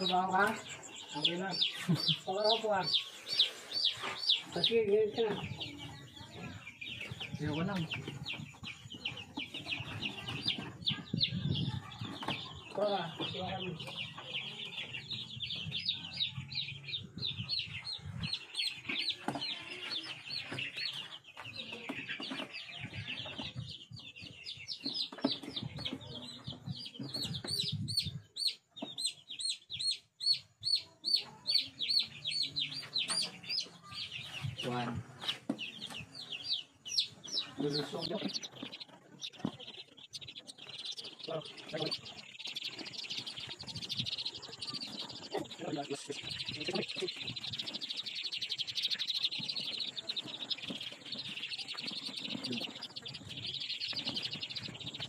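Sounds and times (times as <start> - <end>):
chicks peeping: 0.0 - 55.0.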